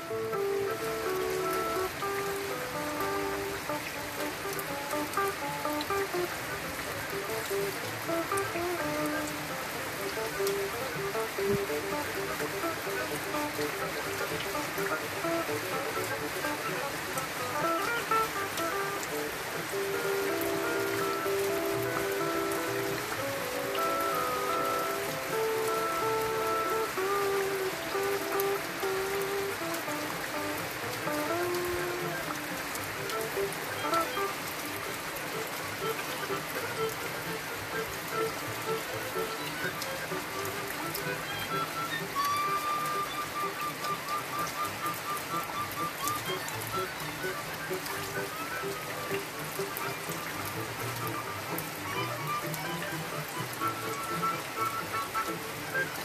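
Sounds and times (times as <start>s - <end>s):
music of short held notes: 0.0s - 56.0s
steady rain falling: 0.0s - 56.0s.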